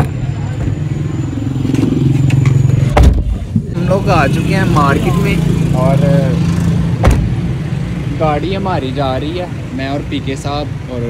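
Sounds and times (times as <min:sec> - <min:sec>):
car door thump: 0:02.9 - 0:03.7, 0:07.0 - 0:07.4.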